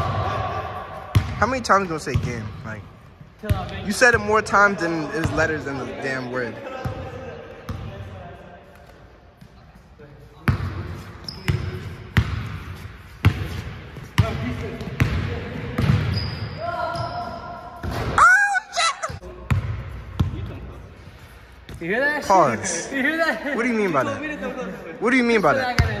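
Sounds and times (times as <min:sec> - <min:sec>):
sneaker squeaks: 0:09.3 - 0:15.2, 0:15.8 - 0:18.3
basketball bouncing on wooden floor: 0:11.5 - 0:16.2.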